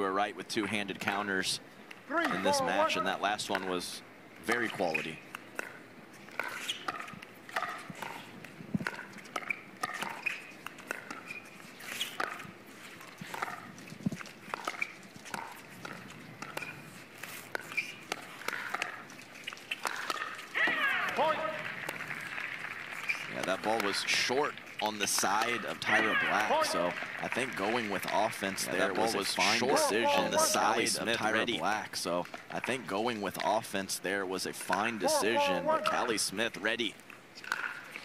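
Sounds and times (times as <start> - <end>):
person calling out: 2.1 - 3.2, 20.6 - 21.6, 25.6 - 26.8, 28.8 - 31.0, 34.8 - 36.2.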